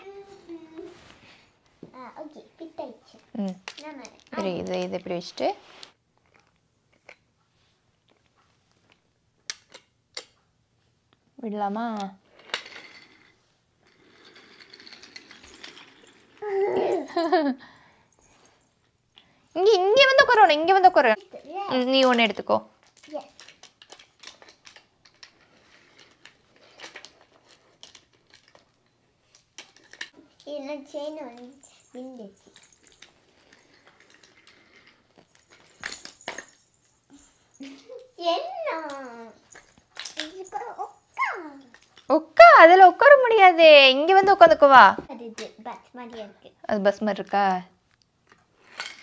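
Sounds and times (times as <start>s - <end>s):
toy train rattling on track: 12.2s - 17.5s, 21.1s - 42.1s, 48.6s - 49.0s
child's vocal sounds: 16.4s - 17.1s, 40.4s - 41.7s.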